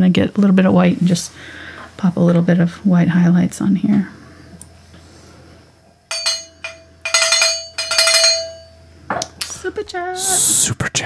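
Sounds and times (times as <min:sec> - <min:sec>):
bright glassy chimes: 0:06.1 - 0:08.8
held ringing tone: 0:06.1 - 0:08.9.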